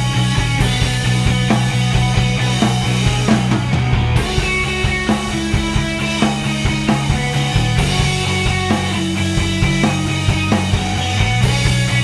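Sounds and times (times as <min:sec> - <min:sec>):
electric bass: 0:00.0 - 0:12.0
electric guitar: 0:00.0 - 0:12.0
steady drum beat: 0:00.0 - 0:12.0.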